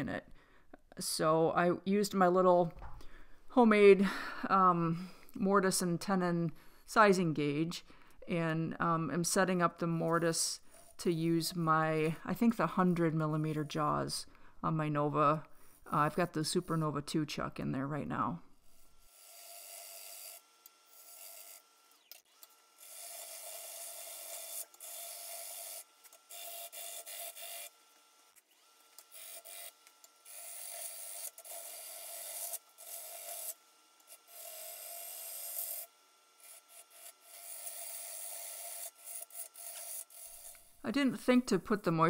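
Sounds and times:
gouge scraping wood on lathe: 29.1s - 40.7s.

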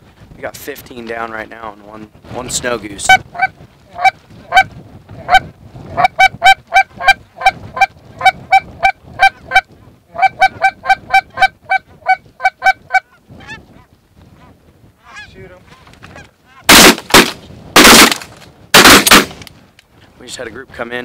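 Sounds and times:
faint goose calls: 3.0s - 16.8s
goose call clucks and honks: 3.0s - 16.9s.

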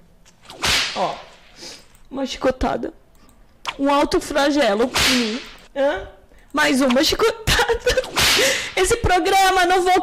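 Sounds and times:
whip crack: 0.4s - 1.2s, 4.9s - 5.6s, 8.0s - 8.5s.

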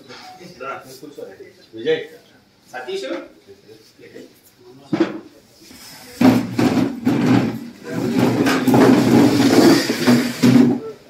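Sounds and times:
men talking loudly: 0.0s - 5.0s.

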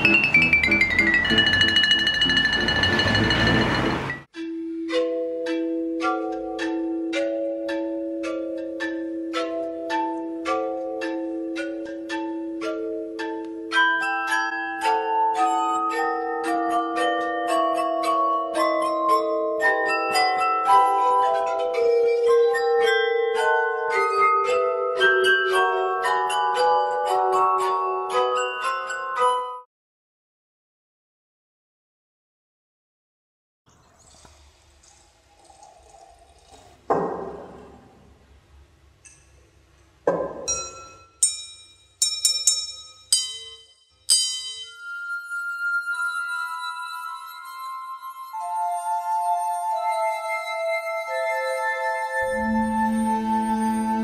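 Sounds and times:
steady high note: 0.0s - 4.3s, 52.2s - 54.0s
wine glass struck ringing: 0.0s - 4.3s, 40.1s - 45.3s
ringing glass notes melody: 0.0s - 29.7s, 40.4s - 54.0s.

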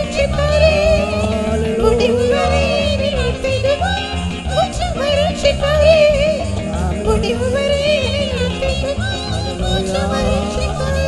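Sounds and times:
instrumental backing with bass beat: 0.0s - 11.0s
person singing long wavering notes: 0.0s - 11.0s.

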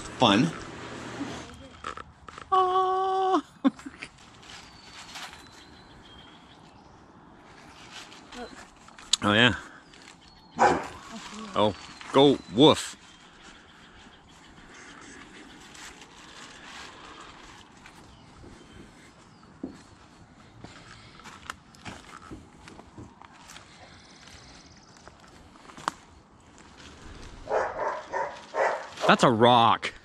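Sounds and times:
footsteps on wood chips: 4.0s - 30.0s.

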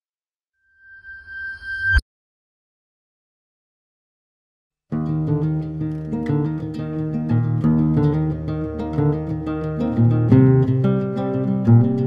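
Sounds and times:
reversed chime: 0.6s - 2.0s.

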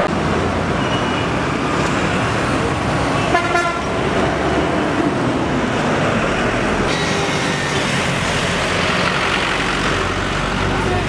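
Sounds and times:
busy road traffic: 0.0s - 11.0s
vehicle horn honking: 3.2s - 3.9s.

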